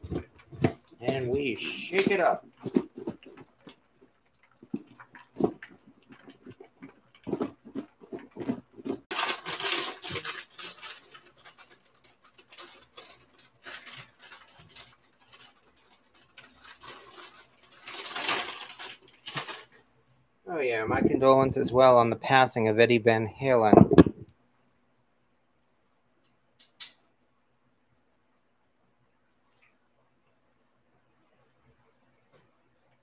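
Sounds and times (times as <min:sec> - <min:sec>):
foil bag rustling: 0:06.4 - 0:19.8.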